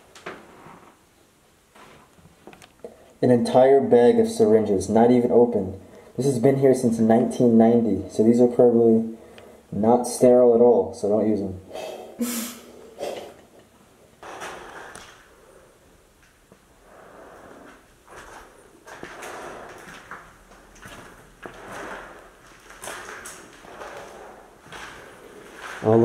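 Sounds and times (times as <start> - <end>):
faint rustling: 14.0 - 26.0
footsteps crunching on gritty floor: 17.7 - 26.0.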